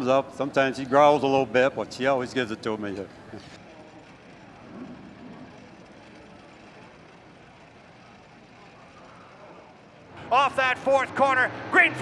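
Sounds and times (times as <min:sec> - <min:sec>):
distant voice: 0:00.0 - 0:12.0
faint background noise: 0:00.0 - 0:12.0.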